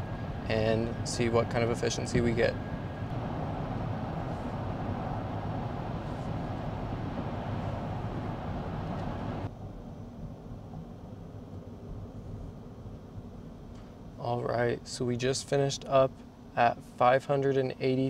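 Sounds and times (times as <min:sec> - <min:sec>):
tyre and wind noise in car: 0:00.0 - 0:13.5.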